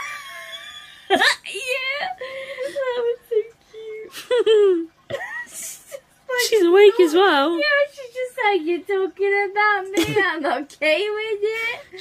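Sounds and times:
woman laughing: 0:00.0 - 0:03.2, 0:03.9 - 0:07.2.

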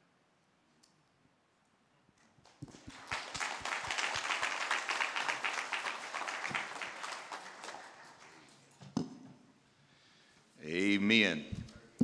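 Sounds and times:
congregation applauding: 0:02.4 - 0:08.8.

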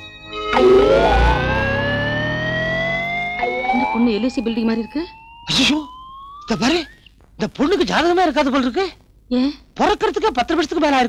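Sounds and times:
sustained electronic tone rising: 0:00.0 - 0:07.1.

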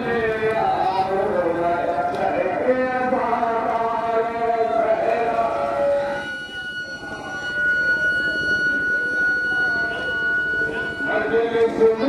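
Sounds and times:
low background murmur: 0:00.0 - 0:12.0
microphone feedback whine: 0:04.4 - 0:12.0.

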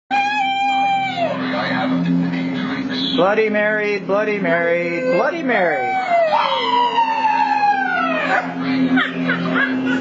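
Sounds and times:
high wailing cry: 0:00.1 - 0:01.6, 0:04.6 - 0:10.0.

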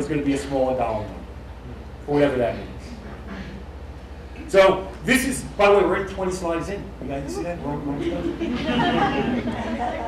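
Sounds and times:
overlapping voices talking: 0:07.3 - 0:10.0.

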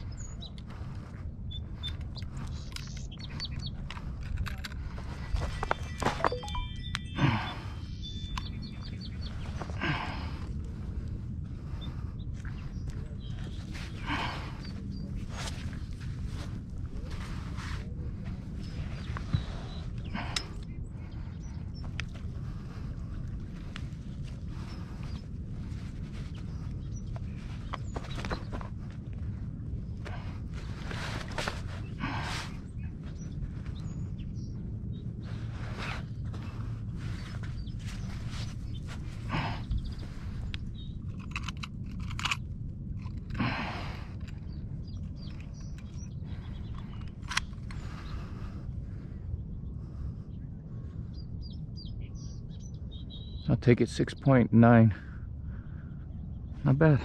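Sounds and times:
steady low rumble: 0:00.0 - 0:57.0.

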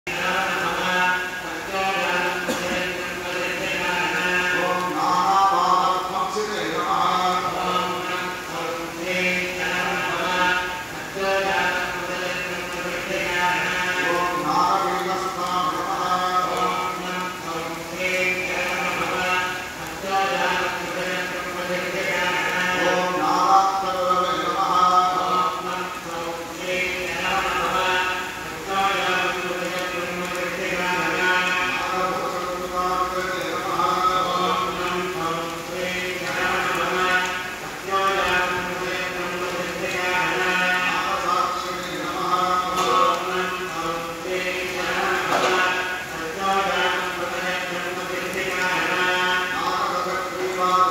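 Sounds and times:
man chanting: 0:00.0 - 0:50.9.

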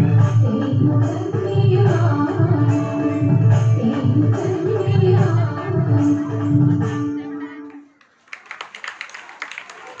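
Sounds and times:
audience clapping: 0:07.9 - 0:10.0.

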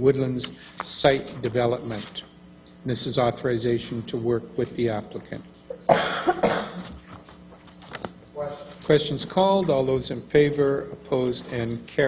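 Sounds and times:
person coughing: 0:05.7 - 0:06.9.

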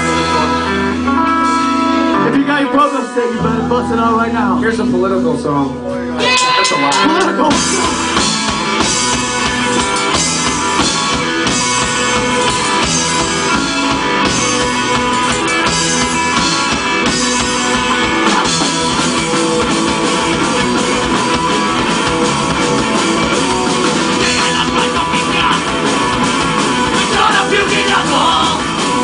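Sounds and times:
bass guitar: 0:00.0 - 0:29.0
distorted electric guitars: 0:00.0 - 0:29.0
drum kit fast beat: 0:06.2 - 0:29.0.

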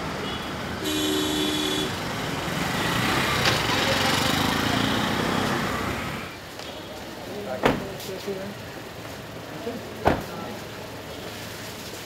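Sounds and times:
road vehicle passing: 0:00.0 - 0:06.4.

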